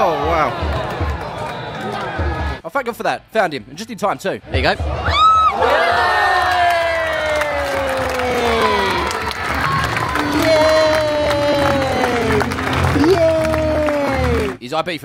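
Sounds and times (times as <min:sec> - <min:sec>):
stadium crowd cheering: 0:04.9 - 0:14.6
young boy shouting cheers: 0:06.4 - 0:12.2.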